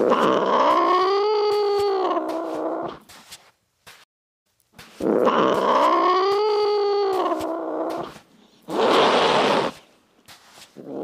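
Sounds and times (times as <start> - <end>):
cat yowling: 0.0 - 3.0, 5.2 - 9.8
cat hissing: 5.0 - 9.8.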